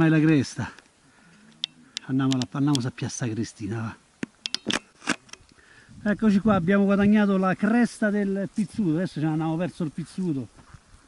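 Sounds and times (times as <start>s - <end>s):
footsteps on stony ground: 6.2s - 11.0s.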